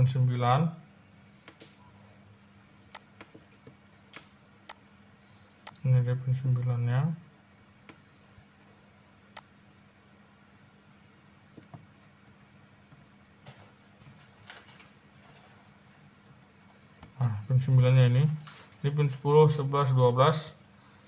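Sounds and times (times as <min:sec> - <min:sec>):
faint steady hum: 0:00.0 - 0:21.0.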